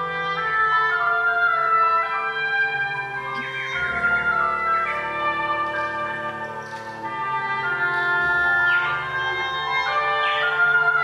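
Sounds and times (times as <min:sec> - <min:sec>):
wind orchestra holding chords: 0:00.0 - 0:11.0.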